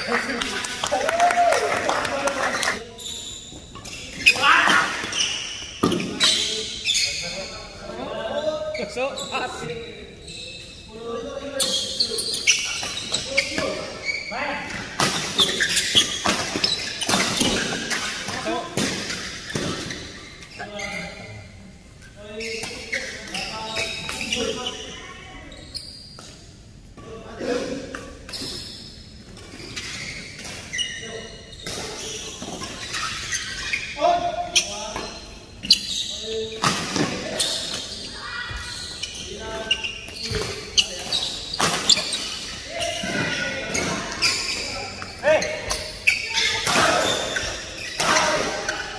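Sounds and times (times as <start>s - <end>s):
shoes squeaking: 2.0s - 21.4s, 22.0s - 26.7s, 27.4s - 48.9s.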